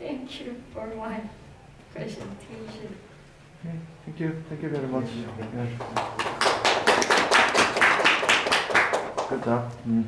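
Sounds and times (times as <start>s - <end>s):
people clapping: 5.4s - 9.7s.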